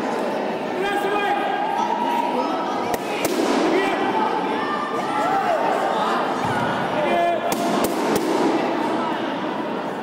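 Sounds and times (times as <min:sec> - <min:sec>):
people chattering and calling: 0:00.0 - 0:10.0.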